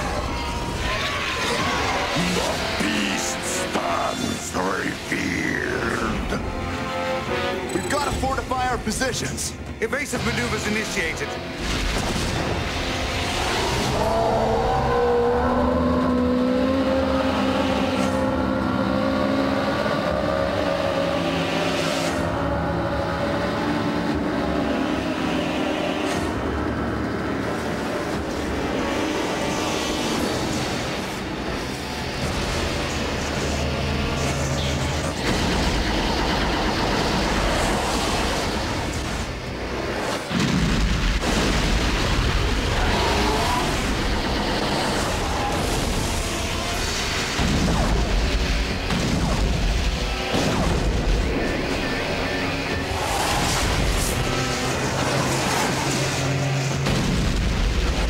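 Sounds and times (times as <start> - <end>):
sci-fi soundtrack music: 0.0 - 58.0.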